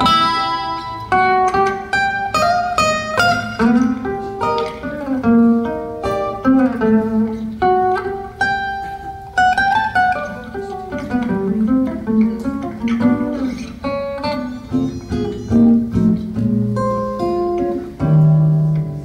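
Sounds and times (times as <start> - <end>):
acoustic guitar music: 0.0 - 19.0.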